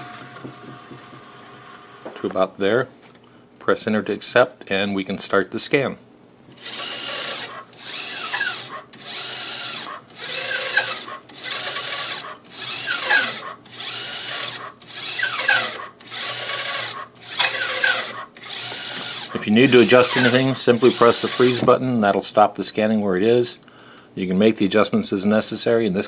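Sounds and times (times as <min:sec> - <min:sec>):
scanner drive motors whirring: 0:06.6 - 0:21.7.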